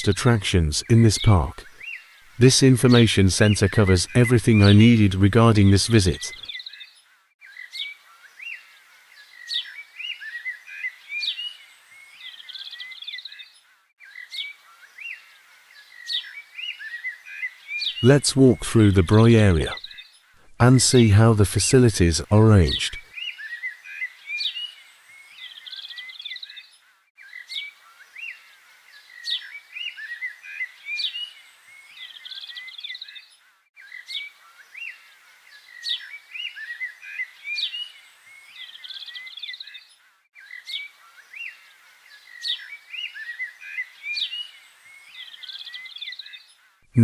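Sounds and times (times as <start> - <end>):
birds chirping and trilling: 0.5 - 20.3, 21.2 - 46.8.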